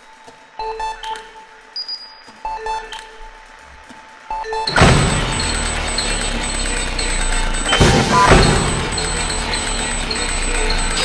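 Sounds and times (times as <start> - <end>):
short repeated notes: 4.7 - 11.0.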